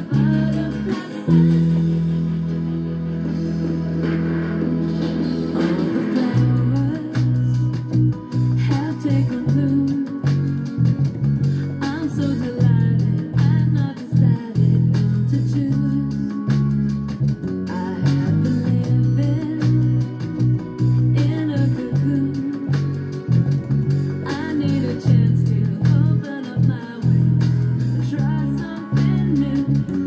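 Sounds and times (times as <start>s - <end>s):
electronic dance-pop music: 0.0s - 16.5s
electric bass line: 0.0s - 30.0s.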